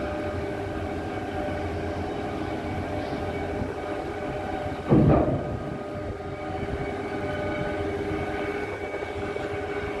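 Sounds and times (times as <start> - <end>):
ship machinery rumble: 0.0 - 10.0
steady whining tones: 0.0 - 10.0.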